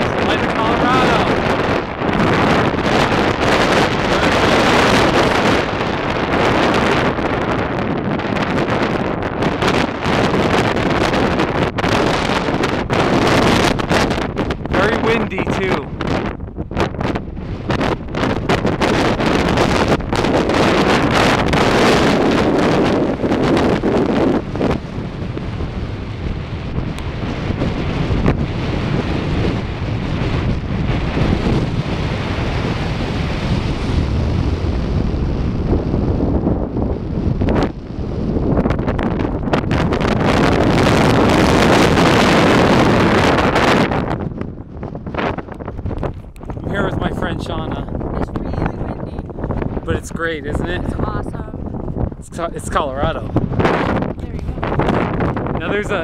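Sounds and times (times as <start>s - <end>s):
strong wind on microphone: 0.0s - 56.0s.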